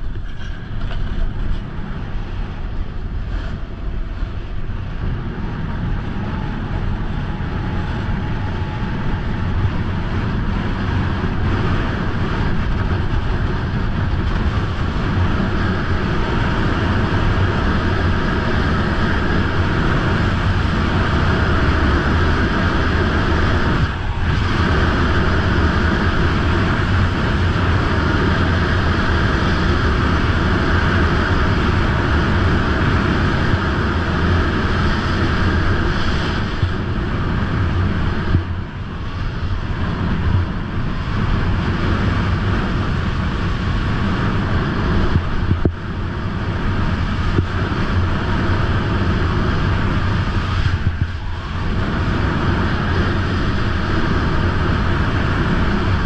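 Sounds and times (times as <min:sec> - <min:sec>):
wind on microphone: 0:00.0 - 0:56.0.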